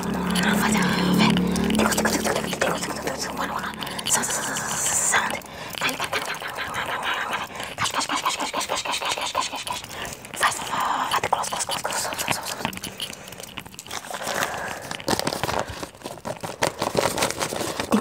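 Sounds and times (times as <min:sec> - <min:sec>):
breathy mouth sounds: 0:00.0 - 0:16.8.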